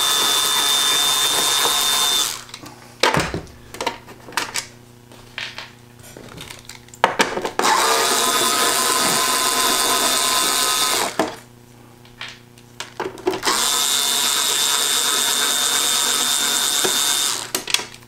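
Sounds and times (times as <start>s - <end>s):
power screwdriver running: 0.0s - 2.6s, 7.6s - 11.4s, 13.4s - 17.7s.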